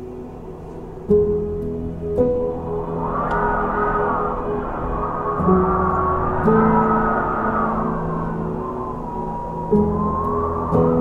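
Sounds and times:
ambient music with low notes: 0.0s - 11.0s
wind gusting: 0.0s - 11.0s.

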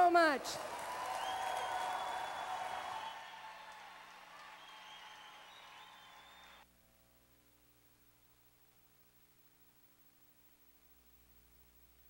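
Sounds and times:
audience applauding and cheering: 0.0s - 6.6s
high whistles: 1.0s - 6.6s.

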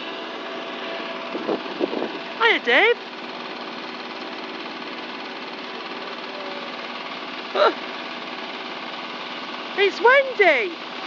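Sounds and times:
engine-driven pump droning: 0.0s - 11.0s.

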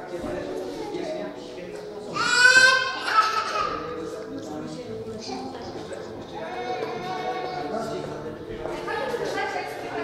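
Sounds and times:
people's voices in a room: 0.0s - 10.0s.

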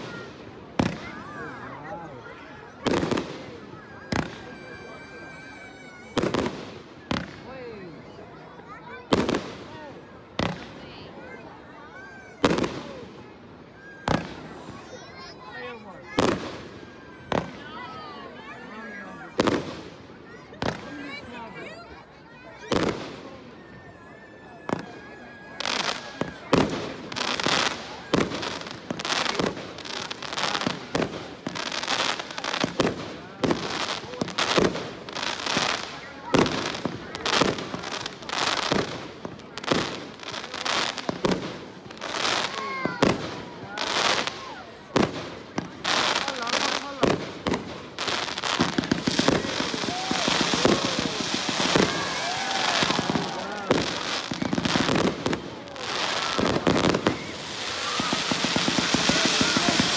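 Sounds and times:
fireworks bursting with bangs: 0.0s - 8.1s, 9.0s - 11.4s, 12.0s - 21.8s, 22.4s - 23.9s, 24.6s - 59.9s.

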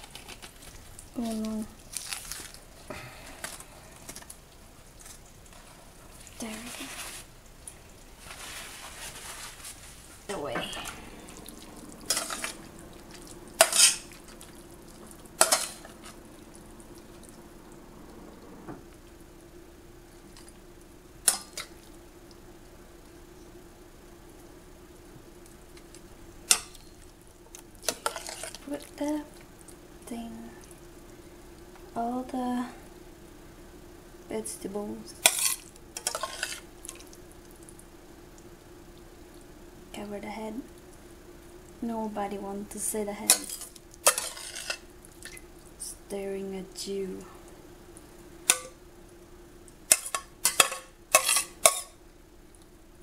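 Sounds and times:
faint steady hum: 0.0s - 53.0s
paper towel rustling: 5.1s - 7.4s, 8.1s - 14.5s
metal spoon clinking on pan and plate: 49.9s - 52.0s.

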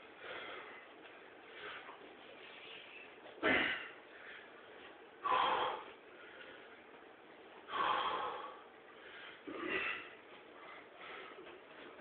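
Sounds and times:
man breathing out heavily: 5.2s - 6.7s, 7.7s - 11.5s.

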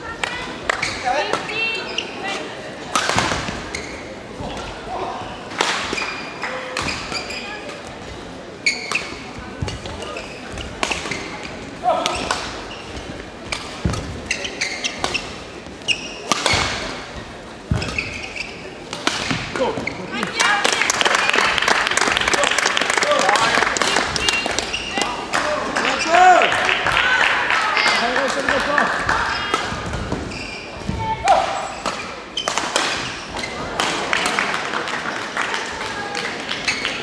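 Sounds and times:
voices in echoing hall: 0.0s - 37.0s
shoe squeaks on court floor: 1.7s - 2.4s, 3.6s - 4.2s, 6.0s - 7.7s, 8.6s - 11.6s, 12.6s - 20.2s, 24.2s - 25.1s, 30.2s - 30.9s, 31.5s - 33.7s, 36.6s - 37.0s
racket striking shuttlecock: 16.2s - 17.0s.

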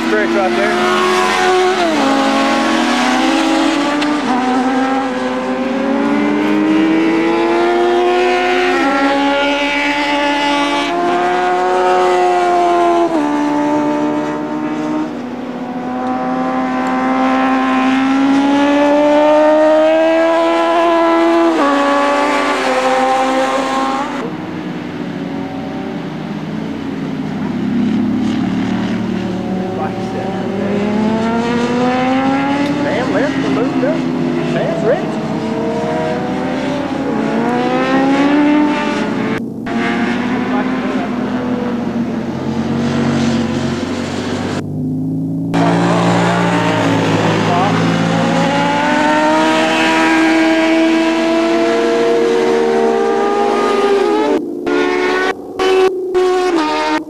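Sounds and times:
motorcycle engines racing past: 0.0s - 57.0s.

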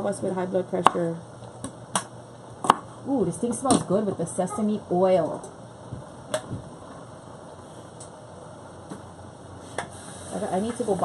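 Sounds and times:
low steady background hiss: 0.0s - 11.0s.

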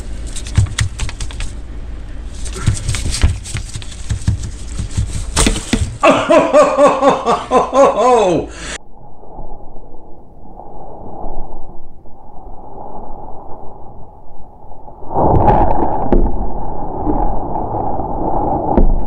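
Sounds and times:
muffled rustling and handling: 0.0s - 6.0s
scraping and rustling: 0.0s - 6.0s
knock and clatter: 2.6s - 6.0s.

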